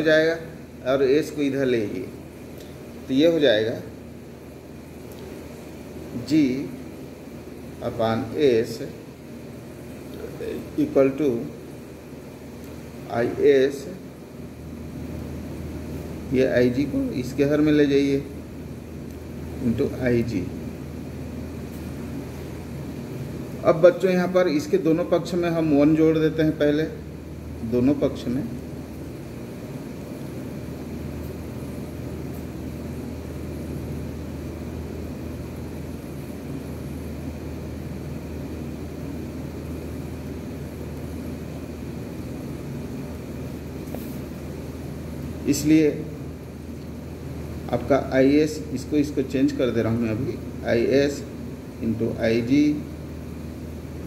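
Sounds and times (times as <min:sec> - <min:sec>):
low room hum and rumble: 0:00.0 - 0:54.0.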